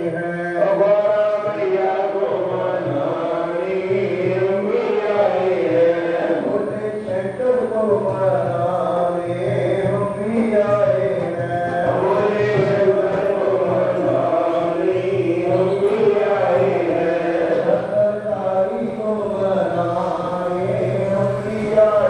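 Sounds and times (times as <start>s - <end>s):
devotional chanting: 0.0s - 22.0s.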